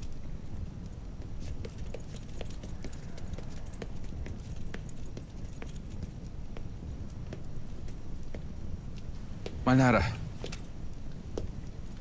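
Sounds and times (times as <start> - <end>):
light metallic clinks: 0.0 - 6.4.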